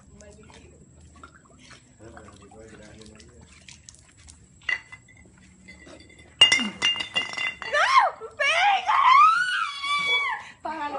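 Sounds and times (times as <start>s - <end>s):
high ringing clink: 4.7s - 7.8s.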